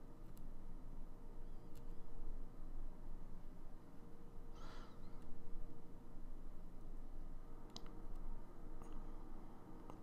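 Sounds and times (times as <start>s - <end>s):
low room hum: 0.0s - 10.0s
light sharp clicks: 7.6s - 9.1s.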